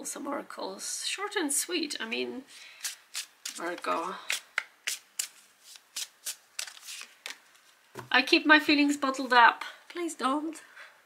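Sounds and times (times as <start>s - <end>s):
card deck being shuffled: 2.8s - 7.8s.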